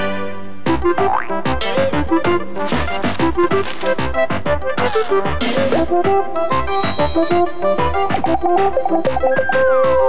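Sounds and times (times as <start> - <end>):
cartoon theme music: 0.8 - 10.0.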